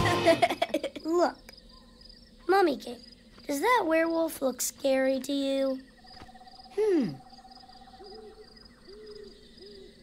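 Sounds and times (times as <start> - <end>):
crickets chirping: 0.3 - 10.0.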